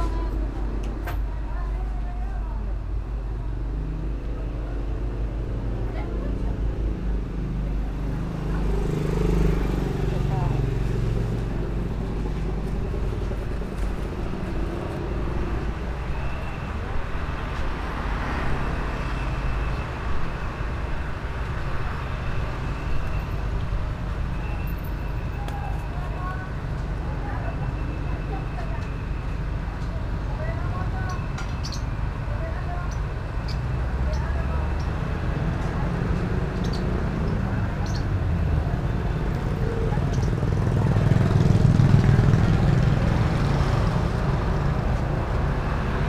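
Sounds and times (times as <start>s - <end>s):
road traffic noise: 0.0s - 46.0s.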